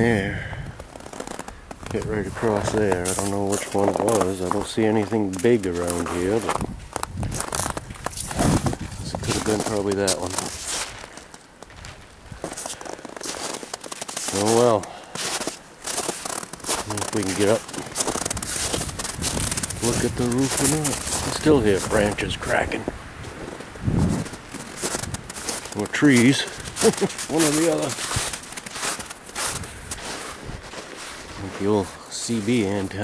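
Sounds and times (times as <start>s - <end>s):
faint crackles: 0.0s - 33.0s
faint outdoor hiss: 0.0s - 33.0s
footsteps crunching on snow: 0.7s - 33.0s.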